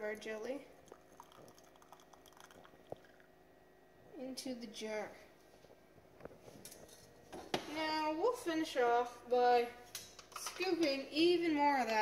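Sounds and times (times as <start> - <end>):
jelly pouring through strainer: 0.0 - 3.3.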